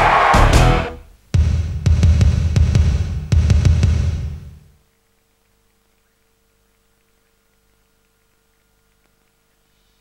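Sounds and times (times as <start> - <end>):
theme music with bass and drums: 0.0 - 4.7.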